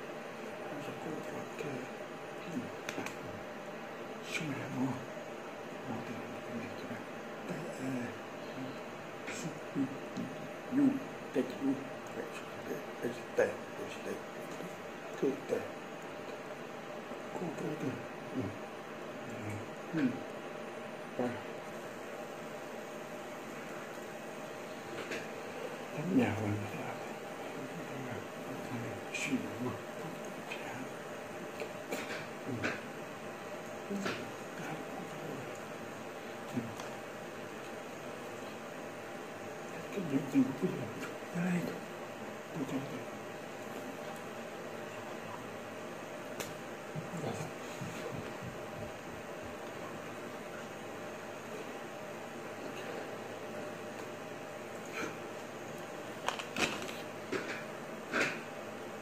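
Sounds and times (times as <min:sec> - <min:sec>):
room hum: 0:00.0 - 0:59.0.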